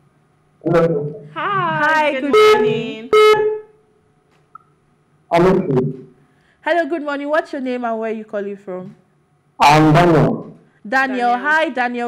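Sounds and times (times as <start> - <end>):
person speaking a greeting: 1.3 - 3.1, 10.9 - 12.0.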